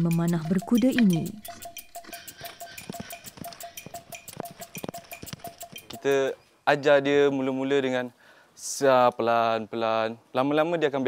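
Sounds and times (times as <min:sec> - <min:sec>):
tack rattling and jingling: 0:00.0 - 0:06.3
horse hoofbeats: 0:00.0 - 0:06.4.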